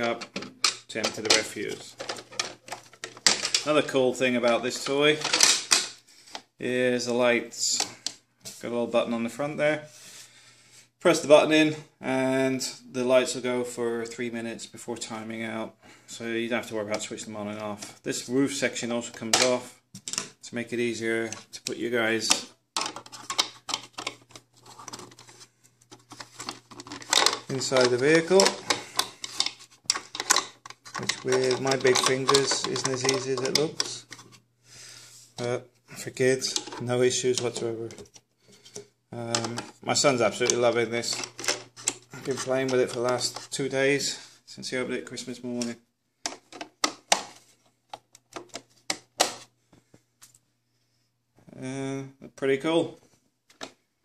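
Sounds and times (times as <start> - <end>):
plastic toy parts clicking: 5.2 - 5.9, 22.3 - 24.4, 26.4 - 34.0
soft plastic scraping: 22.8 - 34.4, 36.4 - 43.6.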